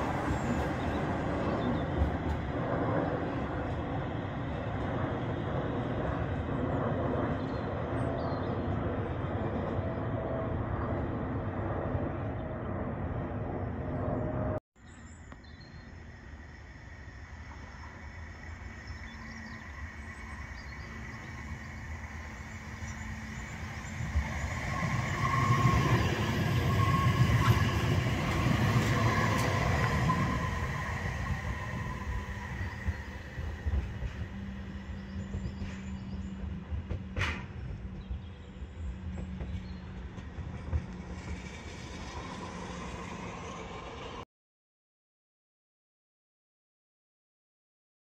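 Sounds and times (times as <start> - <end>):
tram running on track: 0.0 - 14.6, 15.9 - 44.2
high-pitched whine: 15.7 - 36.6.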